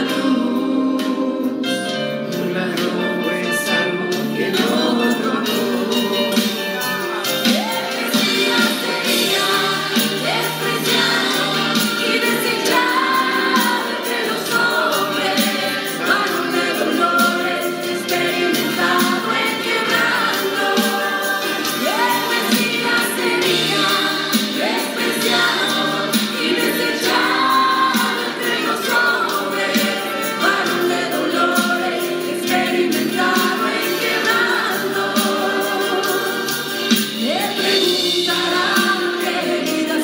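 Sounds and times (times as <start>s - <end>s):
choir singing gospel: 0.0s - 40.0s.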